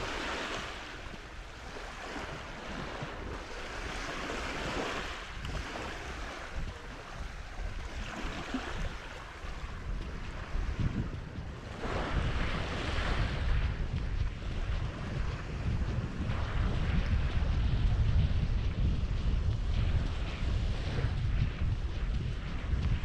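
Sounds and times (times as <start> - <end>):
waves washing onto sand: 0.0 - 23.0
wind buffeting microphone: 0.0 - 23.0.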